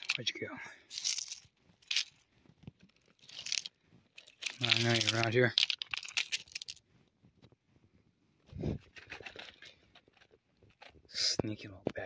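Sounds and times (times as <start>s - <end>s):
pebbles clicking and scraping: 0.0s - 6.9s, 8.6s - 11.8s.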